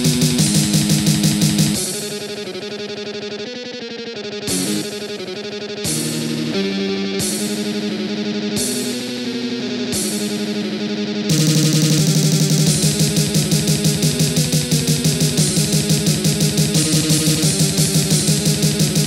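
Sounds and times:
fast sampled piano music: 0:00.0 - 0:01.8, 0:11.3 - 0:19.0.

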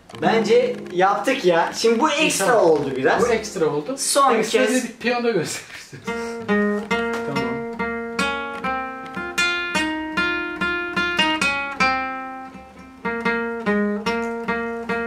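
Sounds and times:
classical guitar picked melody: 0:00.0 - 0:03.8, 0:06.0 - 0:15.0.

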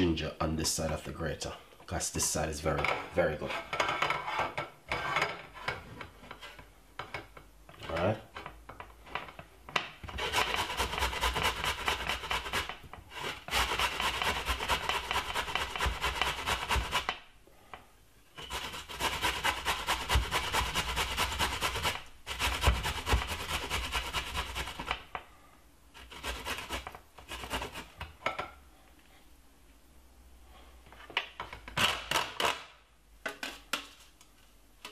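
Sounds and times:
ginger rasping on a grater: 0:10.1 - 0:17.1, 0:18.4 - 0:25.0, 0:26.0 - 0:28.0.

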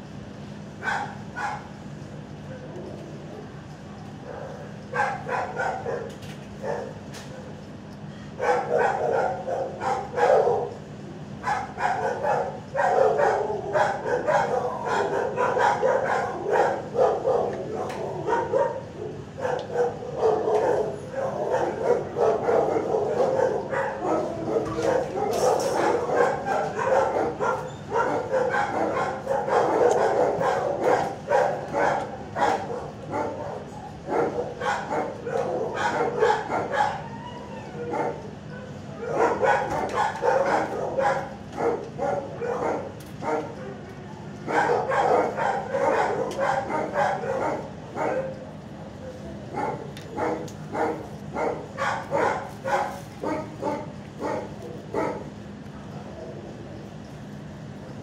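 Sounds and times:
dogs barking and yipping: 0:00.8 - 0:03.0, 0:04.2 - 0:07.6, 0:08.3 - 0:56.4.

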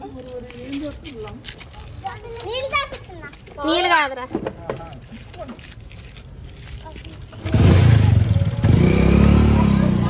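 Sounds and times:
child's voice: 0:01.8 - 0:03.6, 0:09.4 - 0:10.0.

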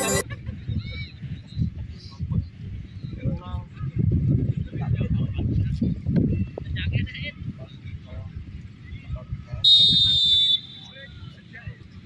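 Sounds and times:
wind rumble on microphone: 0:00.2 - 0:10.2.

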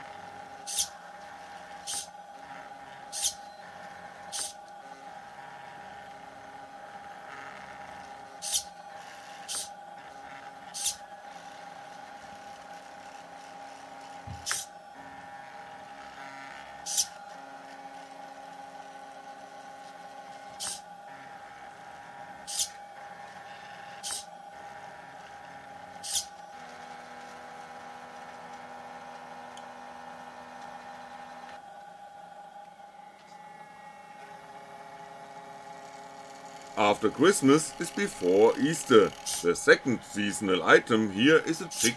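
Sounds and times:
stepper motor high whine: 0:00.0 - 0:41.9.

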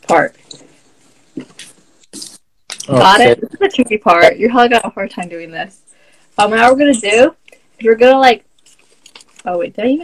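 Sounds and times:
person speaking: 0:00.0 - 0:00.8, 0:01.4 - 0:08.4
paper folding rustles: 0:08.6 - 0:09.5.

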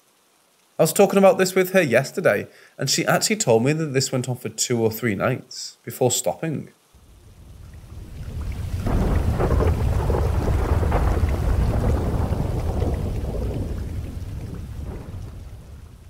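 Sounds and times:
rain: 0:00.0 - 0:16.0
rolling thunder: 0:07.1 - 0:16.0.

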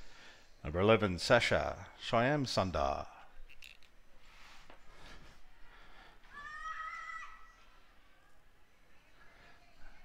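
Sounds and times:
girl yelling high-pitched: 0:06.3 - 0:07.6.

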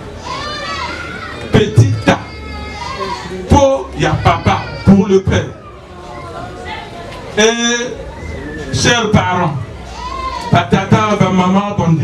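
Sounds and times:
child calling out: 0:00.2 - 0:05.9
man's loud voice: 0:01.5 - 0:02.3, 0:03.0 - 0:05.6, 0:08.7 - 0:09.7, 0:10.5 - 0:12.0.

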